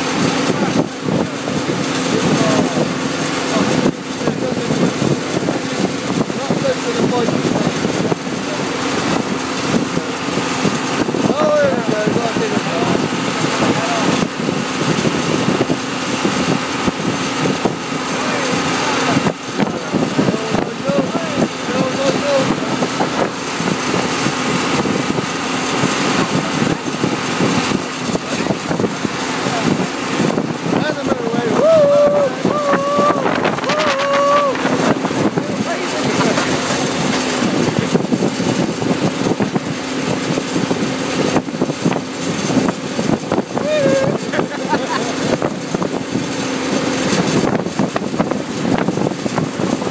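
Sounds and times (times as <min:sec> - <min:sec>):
tractor engine running: 0:00.0 - 0:49.9
wind buffeting microphone: 0:00.0 - 0:49.9
voices: 0:00.1 - 0:40.4, 0:42.5 - 0:47.2.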